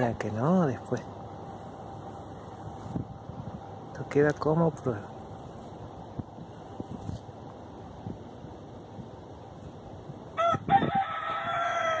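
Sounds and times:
faint outdoor background: 0.0 - 12.0
rooster crowing: 10.4 - 12.0.

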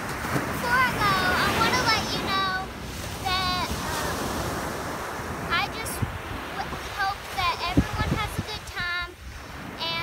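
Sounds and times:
ocean surf washing onto beach: 0.0 - 10.0
wind rumbling on microphone: 0.0 - 10.0
girl's voice: 0.6 - 4.4, 5.5 - 10.0.

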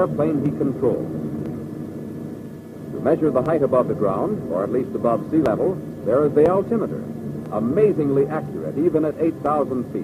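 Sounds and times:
propeller aircraft engines droning: 0.0 - 10.0.

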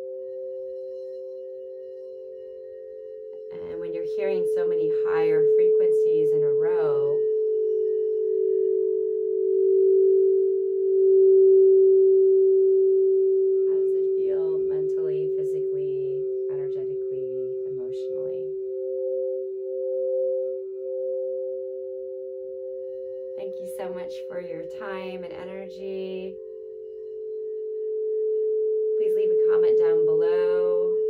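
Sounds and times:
crystal singing bowls ringing: 0.0 - 31.0.

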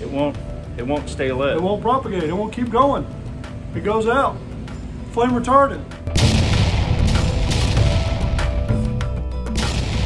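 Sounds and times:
background music: 0.0 - 10.0
firework boom crackling: 6.2 - 8.7.

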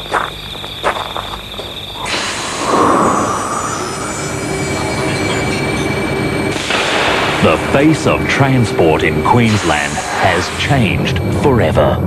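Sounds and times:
high-pitched whine: 0.0 - 12.0
train wheels rumbling on rail: 1.6 - 11.8.

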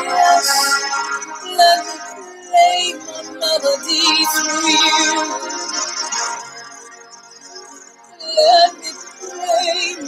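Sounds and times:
woman singing: 0.0 - 5.5, 8.1 - 10.0.

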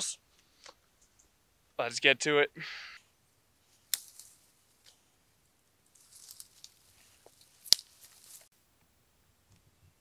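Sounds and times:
dry leaves rustling and crackling: 3.9 - 4.9, 5.8 - 8.5.

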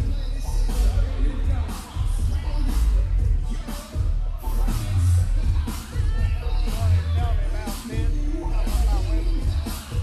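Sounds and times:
hip hop beat with heavy bass: 0.0 - 10.0.

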